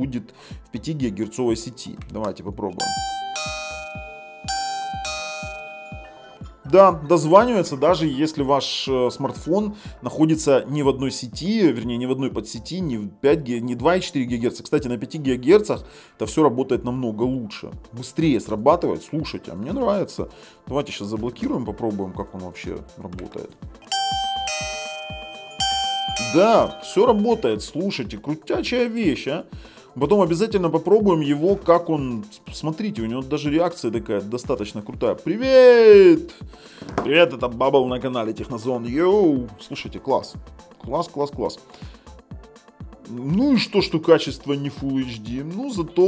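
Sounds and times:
doorbell ding-dong chime: 2.8 - 6.5, 23.8 - 27.6.

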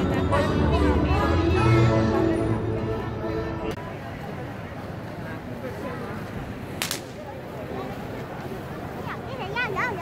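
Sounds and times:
street crowd noise: 0.0 - 10.0
sharp cracks: 6.8 - 7.3.

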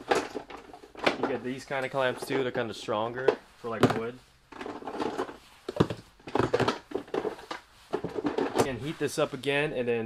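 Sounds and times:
man talking: 1.2 - 4.2, 8.6 - 10.0.

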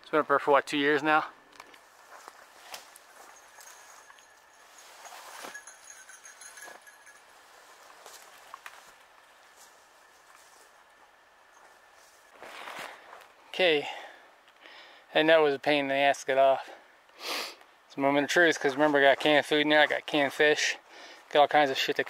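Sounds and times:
faint footsteps: 1.5 - 13.4
rustling in undergrowth: 1.6 - 13.4.

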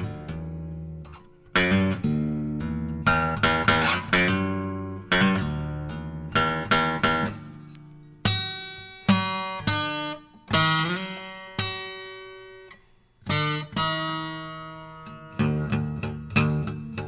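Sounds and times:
acoustic guitar slow notes: 0.0 - 17.0.

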